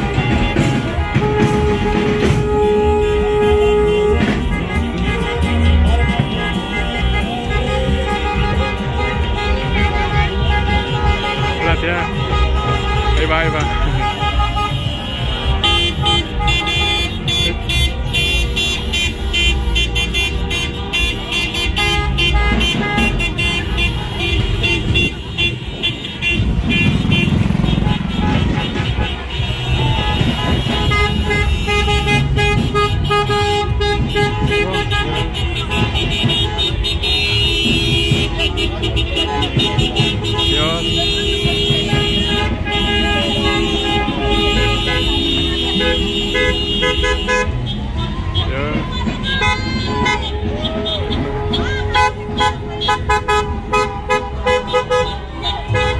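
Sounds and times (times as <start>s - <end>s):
car engines running: 0.0s - 55.9s
car horns honking: 0.0s - 55.9s
people shouting: 28.0s - 32.8s, 38.2s - 52.7s.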